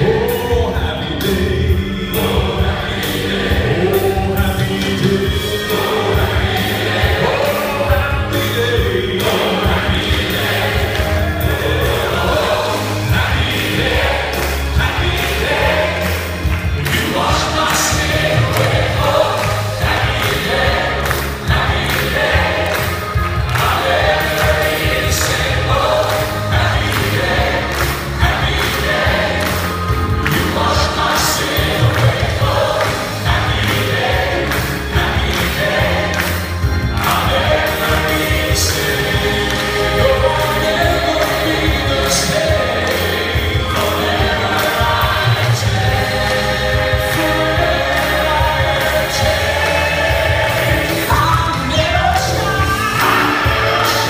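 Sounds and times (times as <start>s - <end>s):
choir singing: 0.0s - 54.0s
grand piano accompaniment: 0.0s - 54.0s
male vocal quartet singing: 0.0s - 54.0s
steady beat: 2.2s - 54.0s.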